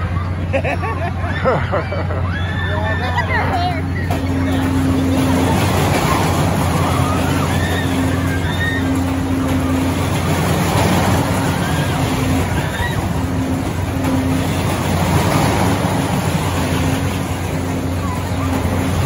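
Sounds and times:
faint murmur of voices: 0:00.0 - 0:19.0
fairground machinery hum: 0:00.0 - 0:19.0
higher drone: 0:01.2 - 0:19.0.

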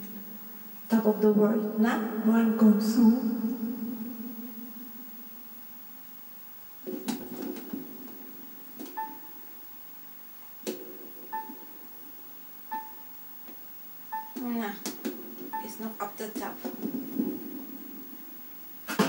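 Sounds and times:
short electronic tones: 0:09.0 - 0:09.6, 0:11.3 - 0:11.8, 0:12.7 - 0:13.3, 0:14.1 - 0:14.5, 0:15.5 - 0:16.1.

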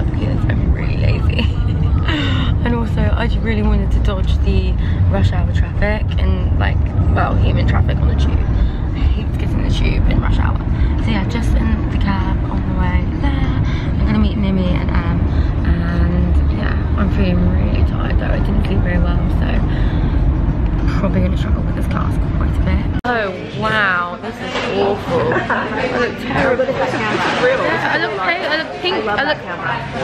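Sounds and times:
woman talking: 0:00.0 - 0:20.0, 0:20.8 - 0:30.0
car road rumble: 0:00.0 - 0:23.1.

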